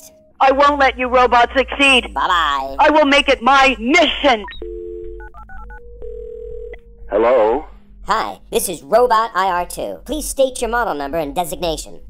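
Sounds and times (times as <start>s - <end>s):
steady tone: 0.0s - 12.0s
telephone dial tone: 4.6s - 6.9s.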